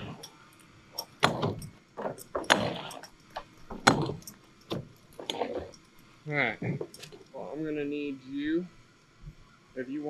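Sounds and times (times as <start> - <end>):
person talking: 6.3 - 8.7.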